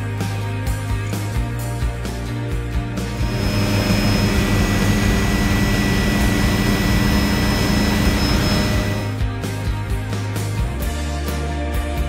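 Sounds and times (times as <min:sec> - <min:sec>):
helicopter rotor beating: 0:03.1 - 0:09.2
helicopter turbine whine: 0:03.1 - 0:09.2.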